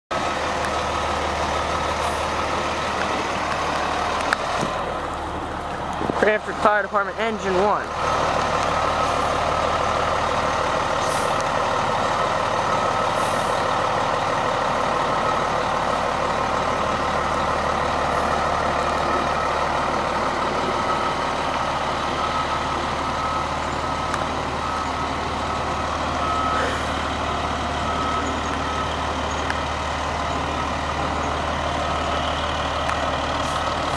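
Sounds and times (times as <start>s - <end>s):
fire engine humming: 0.1s - 33.9s
high reversing beeps: 8.8s - 14.2s, 16.9s - 33.9s.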